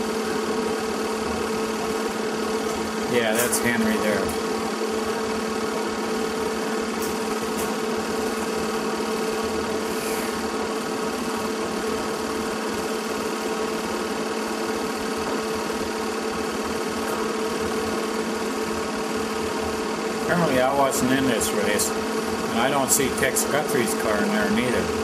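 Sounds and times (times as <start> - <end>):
film projector whirring: 0.0 - 25.0.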